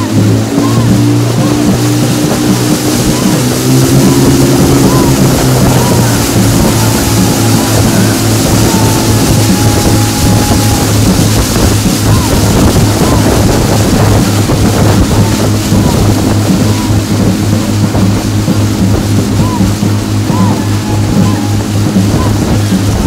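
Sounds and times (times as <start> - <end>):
motorboat engine running: 0.0 - 23.0
rushing water: 0.0 - 23.0
rushing wind: 0.0 - 23.0.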